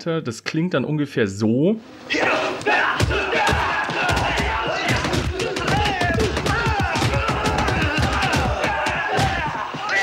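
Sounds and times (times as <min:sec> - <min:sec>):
crowd din: 0:02.1 - 0:10.0
men shouting: 0:02.1 - 0:10.0
sharp impacts of blows: 0:02.2 - 0:10.0.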